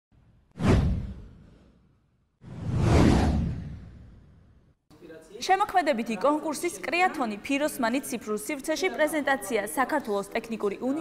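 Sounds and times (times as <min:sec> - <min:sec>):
whoosh sound effects: 0:02.4 - 0:04.6.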